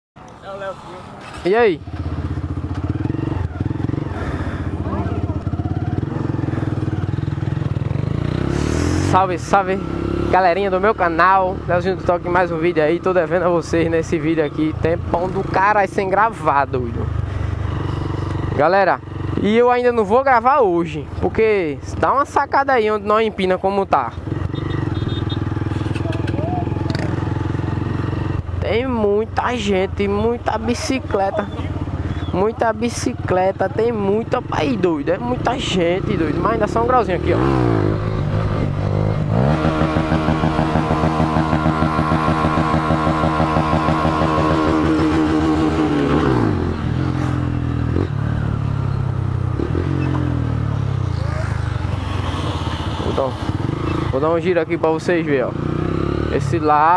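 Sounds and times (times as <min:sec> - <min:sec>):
motorcycle engine running: 0:01.2 - 0:20.4, 0:24.0 - 0:56.9.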